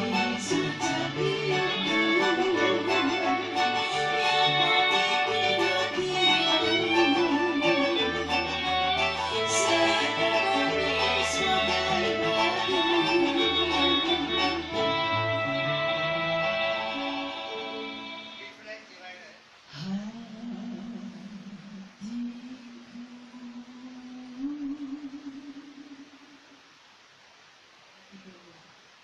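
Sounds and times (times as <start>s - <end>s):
cello bass line: 0.0s - 17.2s
keyboard: 0.0s - 18.5s
violin melody: 0.0s - 18.6s
strummed string instruments: 0.0s - 18.7s.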